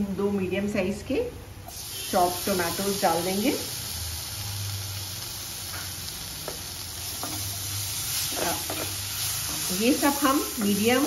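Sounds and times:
tomatoes and masala sizzling in oil: 0:01.6 - 0:11.0.

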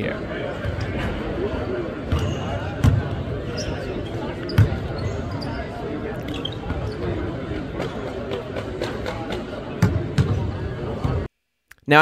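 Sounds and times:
voices in large gym: 0:00.0 - 0:11.3.

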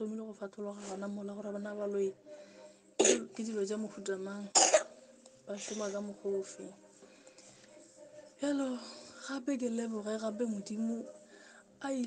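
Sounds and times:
person coughing: 0:03.0 - 0:03.3, 0:04.6 - 0:04.9
person speaking: 0:05.4 - 0:12.0.

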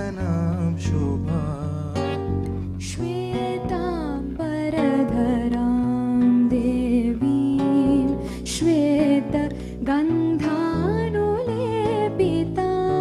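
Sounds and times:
acoustic guitar: 0:00.0 - 0:13.0
lap slide guitar melody: 0:00.0 - 0:13.0.

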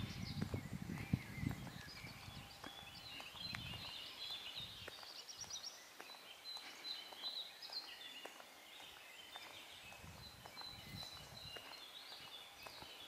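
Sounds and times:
small birds chirping and trilling: 0:00.0 - 0:13.0.

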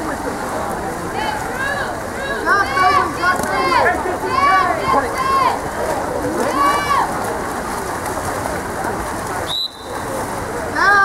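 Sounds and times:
water splashing: 0:00.0 - 0:11.0.

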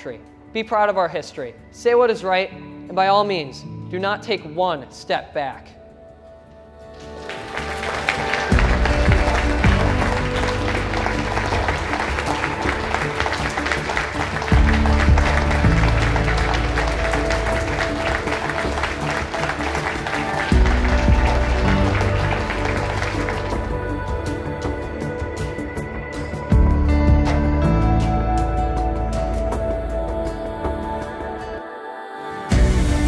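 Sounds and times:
audience applauding: 0:06.9 - 0:25.1
music with deep bass notes: 0:08.4 - 0:31.1, 0:32.5 - 0:33.0.

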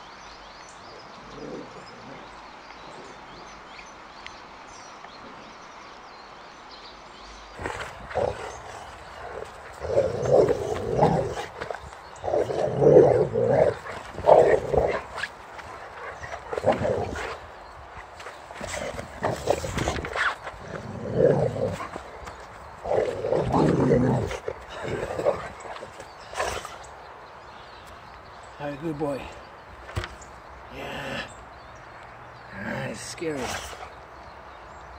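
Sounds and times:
dog growling: 0:01.2 - 0:02.3, 0:07.6 - 0:17.6, 0:18.2 - 0:26.9.

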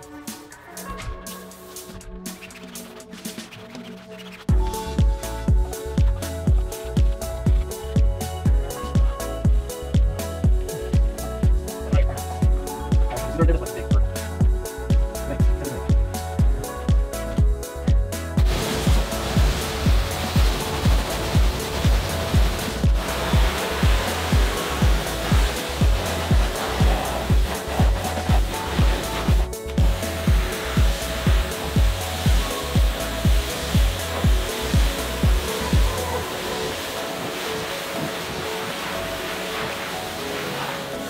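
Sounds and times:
background music with strong beat: 0:00.0 - 0:41.0
pressure washer spraying: 0:18.4 - 0:41.0.

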